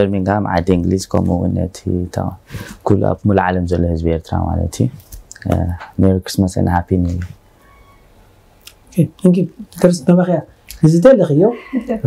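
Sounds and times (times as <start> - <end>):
person talking: 0.0 - 7.4.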